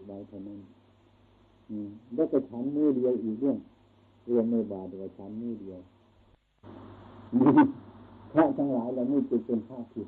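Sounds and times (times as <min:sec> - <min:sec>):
recording hiss: 0:00.0 - 0:10.0.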